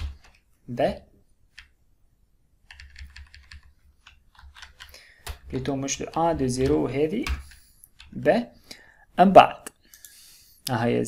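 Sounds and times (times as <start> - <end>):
keyboard keys tapping: 2.7 - 8.2.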